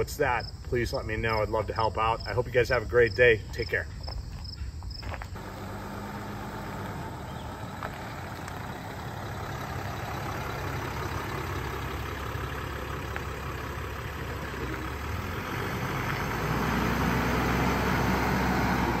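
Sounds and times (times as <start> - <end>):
vehicle engine droning: 5.4 - 19.0.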